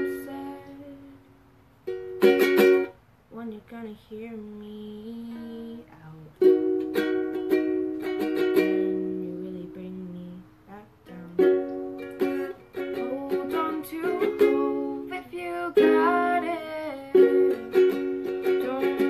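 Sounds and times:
ukulele strummed in chords: 0:00.0 - 0:01.2, 0:01.8 - 0:03.0, 0:05.1 - 0:19.0
girl singing: 0:00.0 - 0:01.3, 0:03.3 - 0:19.0.

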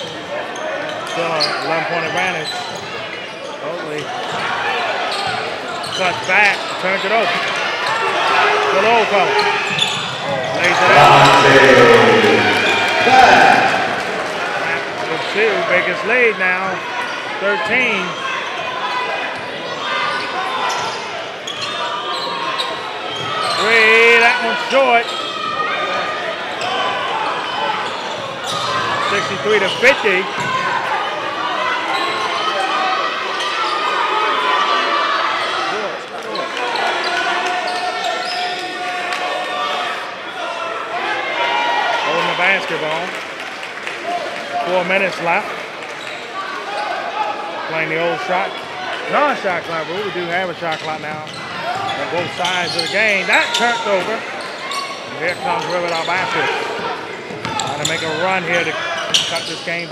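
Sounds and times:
crowd chatter in echoing hall: 0:00.0 - 0:59.9
voices in gym: 0:00.0 - 0:59.9
person calling out: 0:10.7 - 0:13.6.

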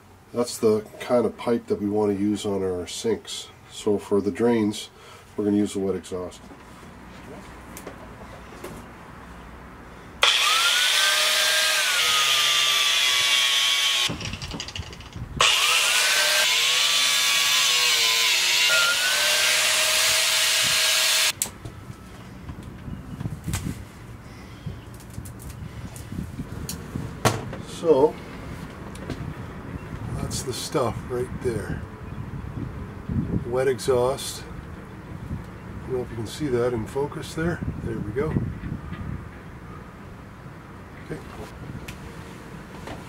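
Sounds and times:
hiss of drill cutting: 0:10.2 - 0:14.1
power drill motor whine: 0:10.2 - 0:21.4.

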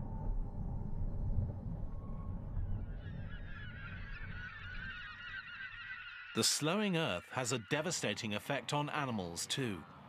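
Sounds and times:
low rumble: 0:00.0 - 0:03.2
flock of birds calling: 0:03.0 - 0:10.0.

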